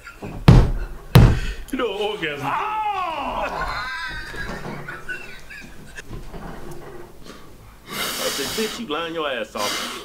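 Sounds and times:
high-pitched laughter: 0:03.3 - 0:06.0.

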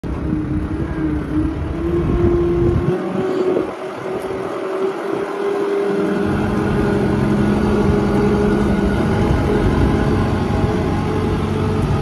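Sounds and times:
vehicle engine rumbling: 0:00.0 - 0:12.0.

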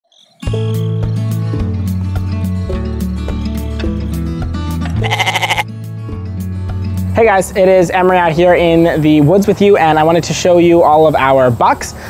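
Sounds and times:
goat bleating: 0:04.8 - 0:05.7.

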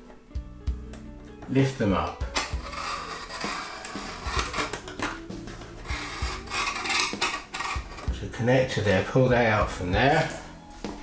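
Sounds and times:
tape tearing with crackles: 0:02.3 - 0:05.2, 0:05.8 - 0:08.1
strips scraping against metal: 0:02.3 - 0:08.2.

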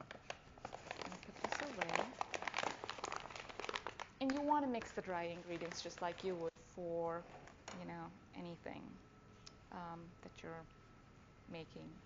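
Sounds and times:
paper bag crinkling: 0:00.0 - 0:06.5.

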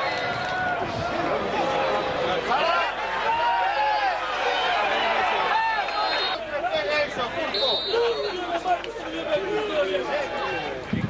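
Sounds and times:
people talking: 0:04.8 - 0:11.0.

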